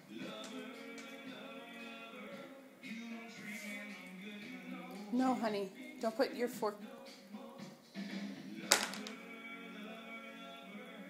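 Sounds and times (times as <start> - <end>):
music from television: 0.0 - 11.0.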